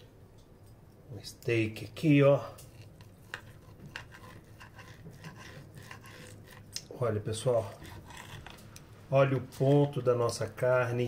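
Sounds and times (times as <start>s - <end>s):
knife sawing through meat: 2.7s - 8.6s.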